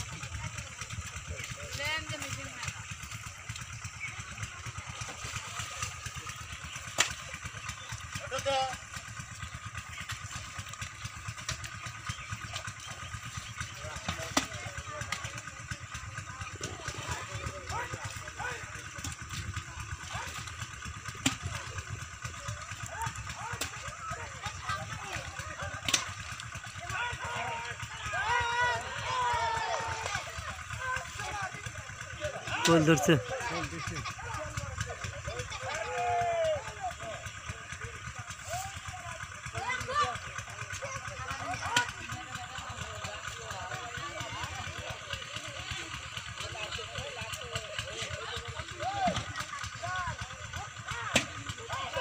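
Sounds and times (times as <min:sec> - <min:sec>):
distant voices calling: 0:00.0 - 0:52.0.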